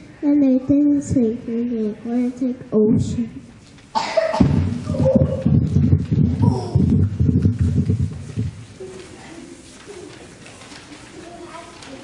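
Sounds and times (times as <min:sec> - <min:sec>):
faint murmur of voices: 0:00.0 - 0:12.0
room noise: 0:00.0 - 0:12.0.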